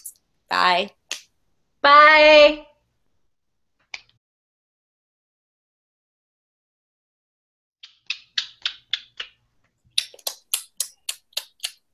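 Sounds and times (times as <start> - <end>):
hands snapping: 7.8 - 11.8.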